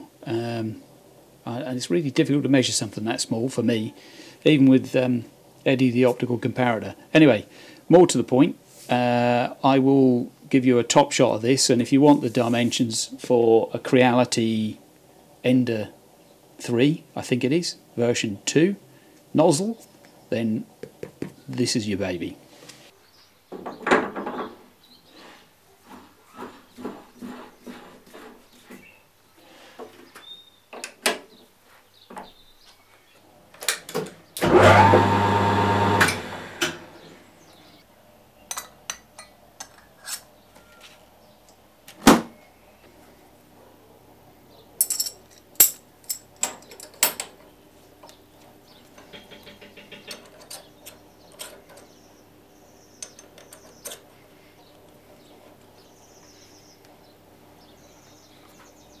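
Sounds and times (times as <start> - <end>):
metallic clicking and rattling: 49.0 - 52.0.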